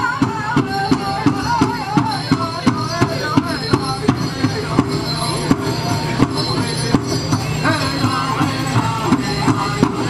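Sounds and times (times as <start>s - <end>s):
men singing in high voices: 0.0s - 5.2s, 7.4s - 10.0s
large drum beat: 0.0s - 10.0s.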